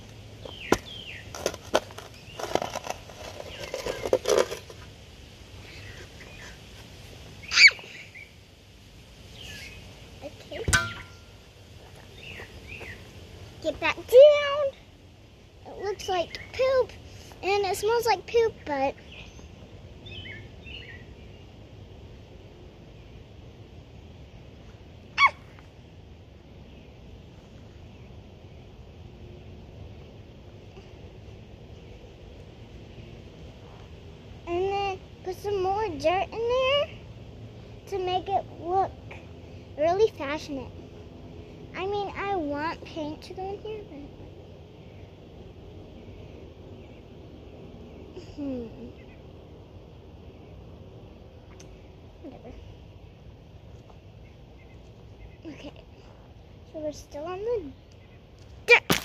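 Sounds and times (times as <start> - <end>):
outdoor background noise: 0.0 - 59.0
faint bird chirps: 9.3 - 9.9, 47.8 - 49.3.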